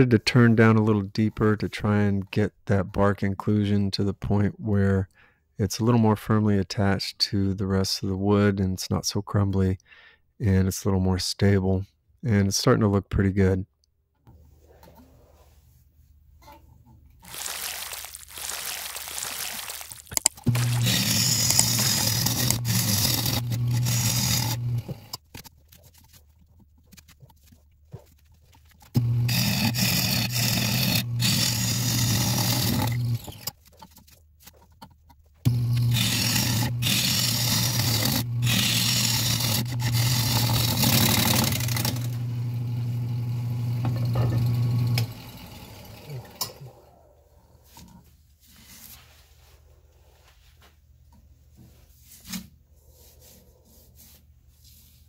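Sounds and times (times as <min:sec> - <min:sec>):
wood lathe motor hum: 0:20.4 - 0:25.1, 0:29.0 - 0:33.5, 0:35.5 - 0:47.2
gouge cutting wood with hiss: 0:20.5 - 0:25.0.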